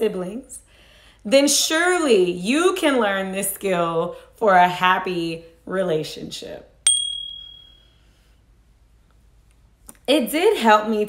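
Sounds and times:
bright bell ding: 0:06.9 - 0:07.9.

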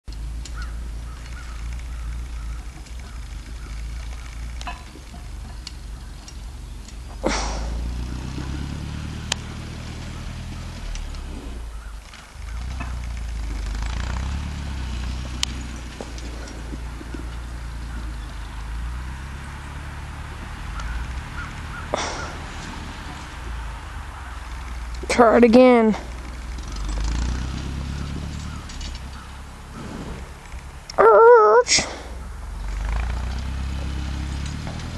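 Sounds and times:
tractor engine running: 0:00.0 - 0:34.9.

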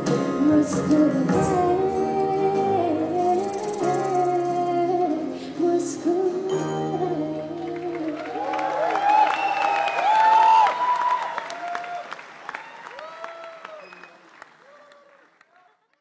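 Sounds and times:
audience applauding and cheering: 0:07.5 - 0:16.0
whoops: 0:08.1 - 0:15.3.

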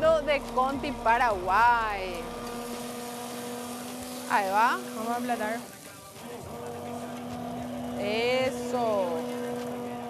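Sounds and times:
immersion blender running in liquid: 0:00.0 - 0:10.0.

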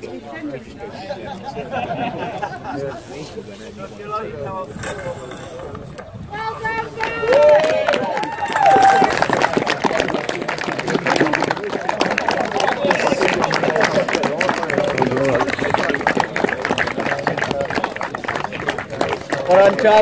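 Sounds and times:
people talking: 0:00.0 - 0:20.0
crowd clapping: 0:06.6 - 0:20.0.

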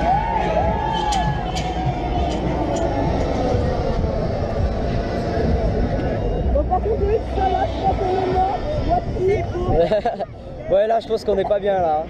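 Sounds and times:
faint fairground music: 0:00.0 - 0:12.0
heavy ride rumble: 0:00.0 - 0:12.0
wind buffeting microphone: 0:00.0 - 0:12.0.

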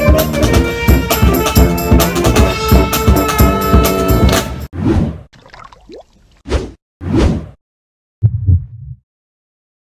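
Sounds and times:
heartbeat thumps: 0:08.2 - 0:09.0.

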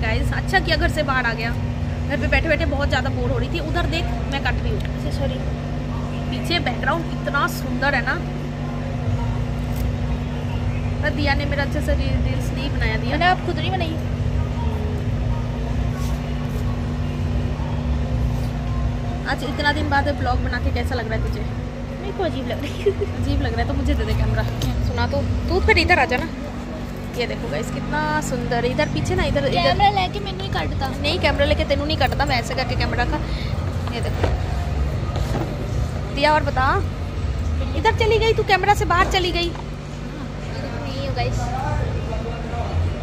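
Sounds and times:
constant hum: 0:00.0 - 0:43.0
woman speaking: 0:11.0 - 0:14.1, 0:19.2 - 0:34.5, 0:36.1 - 0:37.0, 0:37.6 - 0:39.6.

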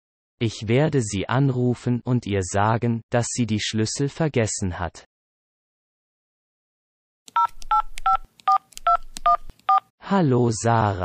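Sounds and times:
touch-tone keypad beeps: 0:07.3 - 0:09.8.

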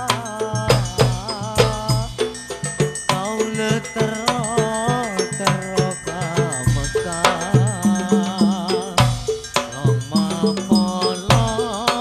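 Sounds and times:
frame drums and hand drums: 0:00.0 - 0:12.0
man singing: 0:00.0 - 0:12.0.

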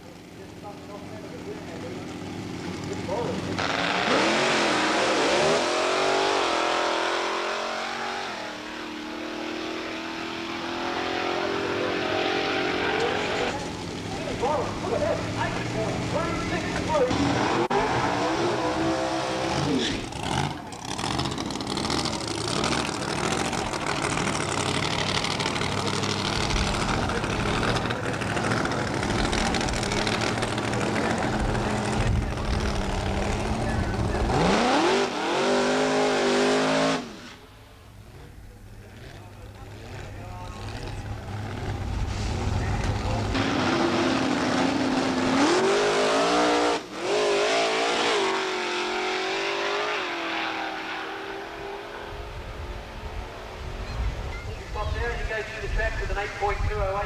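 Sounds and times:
drag car engines revving: 0:00.0 - 0:57.0
tyres spinning in a burnout: 0:00.6 - 0:37.4.

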